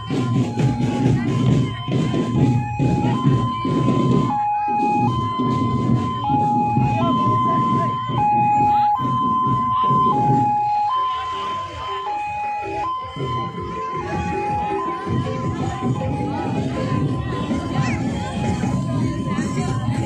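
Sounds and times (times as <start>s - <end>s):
loud crowd noise: 0.0s - 20.0s
two-tone hi-lo siren: 0.0s - 20.0s.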